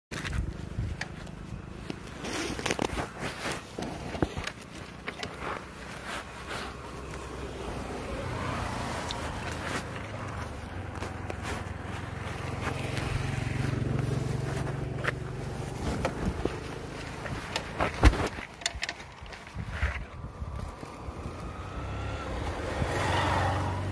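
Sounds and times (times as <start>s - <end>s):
small motorcycle engine running: 0.2s - 18.0s.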